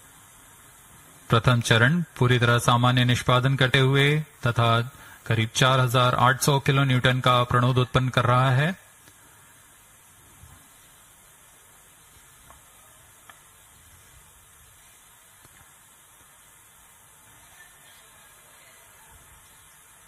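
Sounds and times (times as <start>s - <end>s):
steady background hiss: 0.0s - 20.0s.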